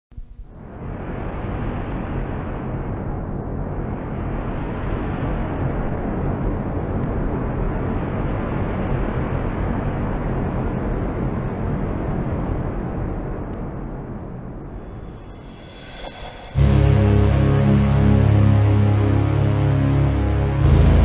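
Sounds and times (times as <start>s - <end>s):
steady rushing noise: 14.6s - 19.7s.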